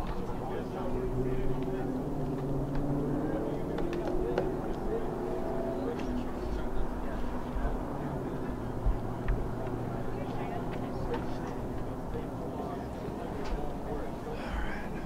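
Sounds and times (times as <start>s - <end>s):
people chattering: 0.0s - 15.0s.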